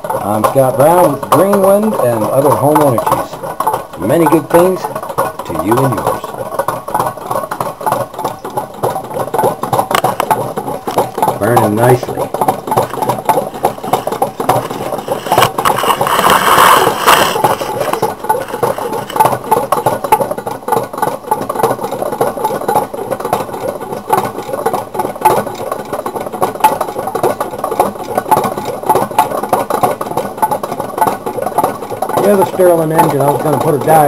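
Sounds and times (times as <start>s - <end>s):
small engine linkages rattling: 0.0s - 34.0s.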